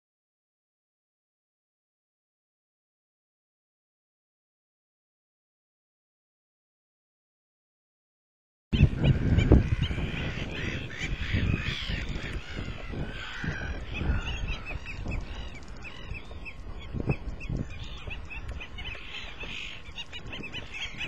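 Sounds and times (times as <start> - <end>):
birds calling sharp notes: 8.8 - 21.0.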